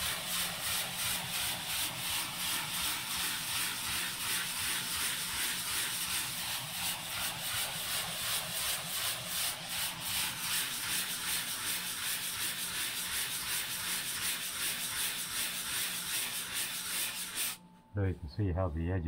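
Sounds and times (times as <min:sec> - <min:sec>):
sanding block scratching drywall: 0:00.0 - 0:17.6.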